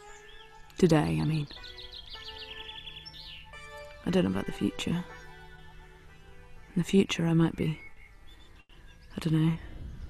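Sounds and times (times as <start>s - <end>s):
background music held tones: 0.0s - 9.6s
small birds chirping: 0.0s - 10.0s.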